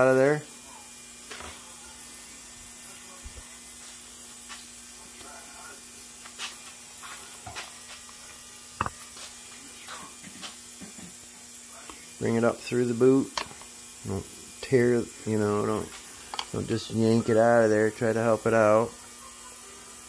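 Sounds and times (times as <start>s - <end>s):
ultrasonic cleaner humming: 0.0s - 20.0s
hand tools clicking and tapping: 15.9s - 16.6s.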